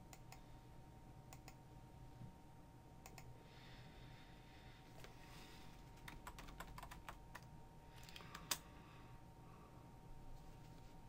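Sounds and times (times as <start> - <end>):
typing on computer keyboard: 6.0 - 8.6.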